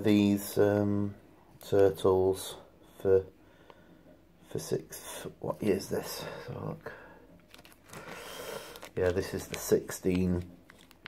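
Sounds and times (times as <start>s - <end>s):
rustling handling noise: 7.3s - 11.0s.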